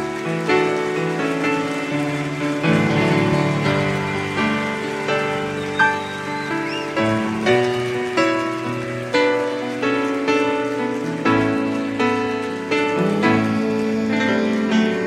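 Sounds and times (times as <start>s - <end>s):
piano chords: 0.0s - 15.0s.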